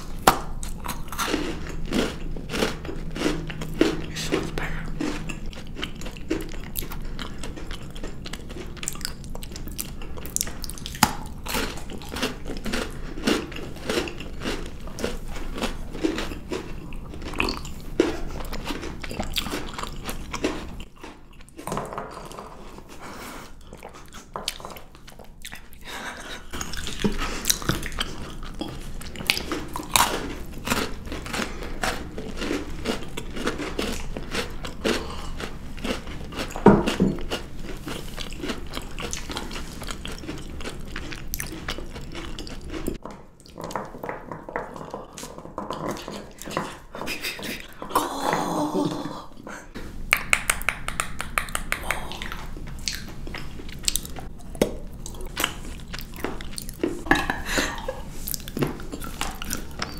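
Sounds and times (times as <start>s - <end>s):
biting and chewing marshmallows: 0.0s - 49.1s, 50.0s - 59.9s.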